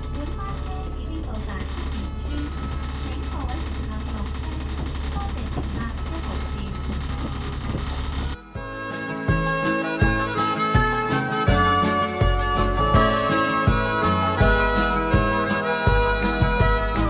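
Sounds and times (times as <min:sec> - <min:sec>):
background music: 0:00.0 - 0:17.0
bus engine rumble: 0:00.0 - 0:17.0
harmonica music: 0:05.9 - 0:17.0.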